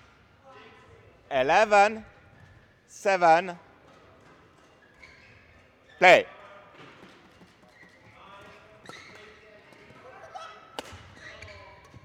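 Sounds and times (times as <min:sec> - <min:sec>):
sports hall background: 0:00.0 - 0:12.0.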